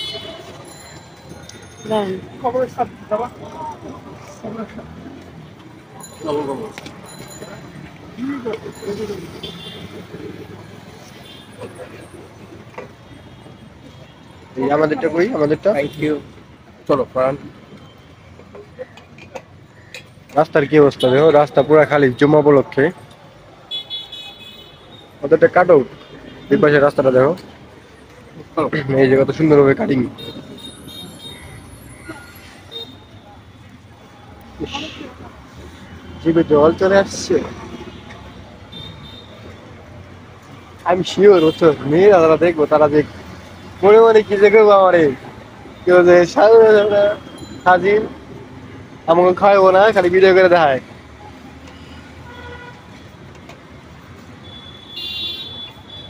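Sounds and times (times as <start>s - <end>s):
street traffic noise: 0.0s - 56.0s.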